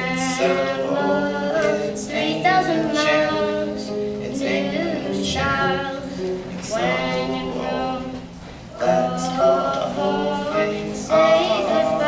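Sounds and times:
person singing: 0.0s - 12.0s.

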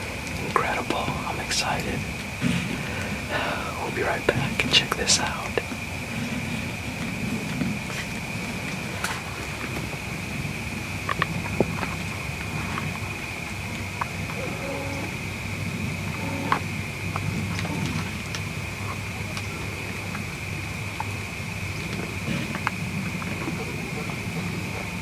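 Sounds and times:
steady high-pitched whine: 0.0s - 25.0s.

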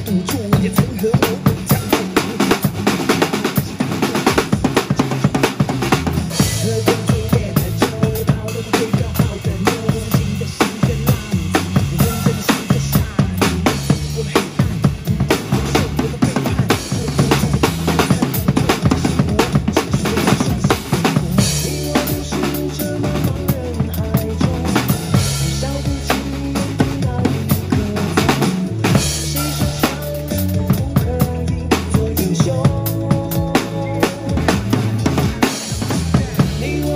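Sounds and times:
drum kit played live: 0.0s - 36.9s
pop backing track: 0.0s - 36.9s.

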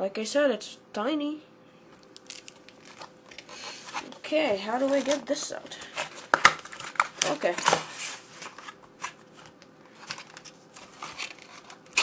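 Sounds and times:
packaging crinkling: 2.0s - 12.0s.

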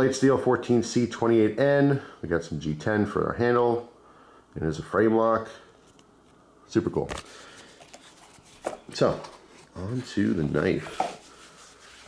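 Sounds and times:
paper rustling: 7.0s - 12.0s.

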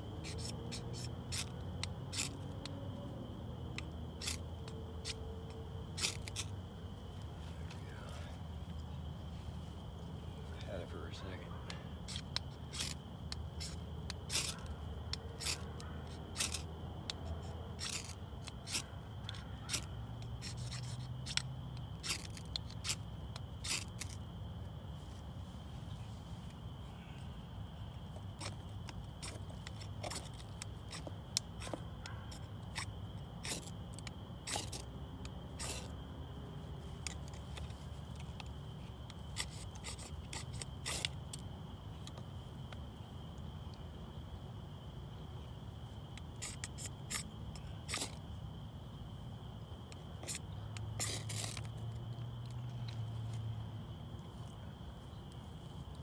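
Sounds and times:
knife scraping bark tinder: 0.1s - 6.6s, 11.1s - 24.3s, 28.1s - 36.0s, 36.9s - 41.5s, 46.2s - 48.3s, 49.9s - 53.0s.

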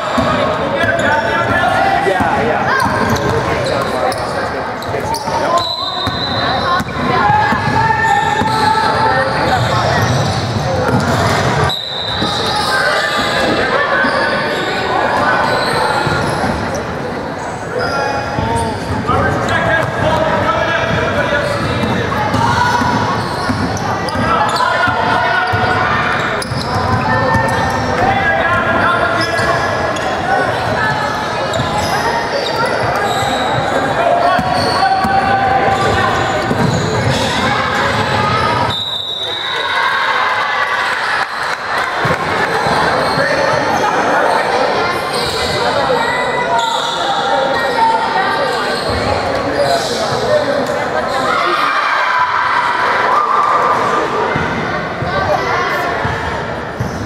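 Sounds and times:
players and spectators calling: 0.0s - 57.0s.

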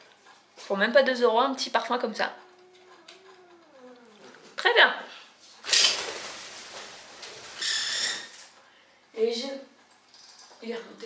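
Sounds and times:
birds rustling in cage: 5.4s - 8.6s.

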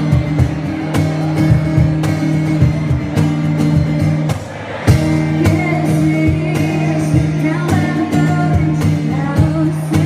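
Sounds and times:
guitar: 0.0s - 10.0s.

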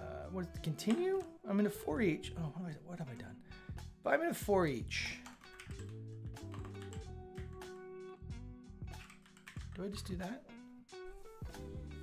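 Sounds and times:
soft lo-fi music: 0.0s - 12.0s
computer keyboard typing: 0.8s - 1.4s, 5.1s - 7.7s, 9.0s - 10.1s.

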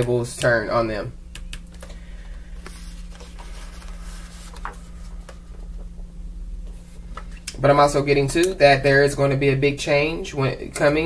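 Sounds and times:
low electrical hum: 0.0s - 11.0s
paper card rustling: 1.7s - 5.8s.

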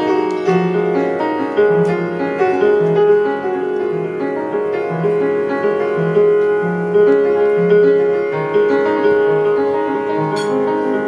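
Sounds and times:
upright piano playing: 0.0s - 11.0s.

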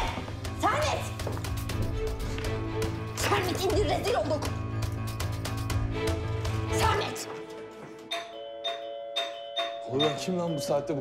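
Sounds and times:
doorbell chiming: 8.1s - 11.0s.

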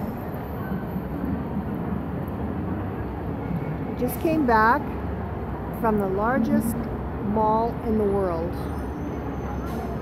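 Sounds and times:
low city rumble: 0.0s - 10.0s.

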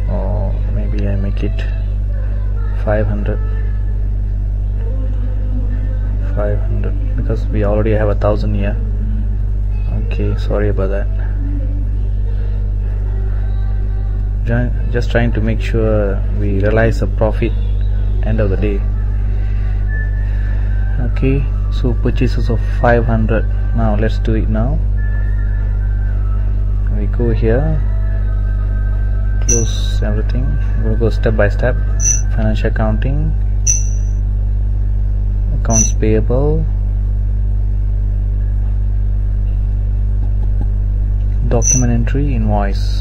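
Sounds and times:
low electrical hum: 29.2s - 34.2s
faint high tone: 29.5s - 29.8s, 33.7s - 34.2s, 35.7s - 36.0s
low hum: 29.5s - 29.9s, 32.0s - 32.4s, 33.7s - 34.2s, 35.7s - 36.0s, 41.6s - 42.0s.

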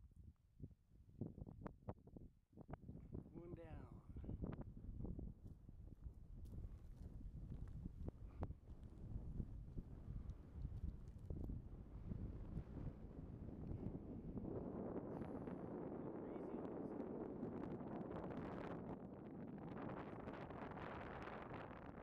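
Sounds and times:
wind gusting on microphone: 1.2s - 22.0s.

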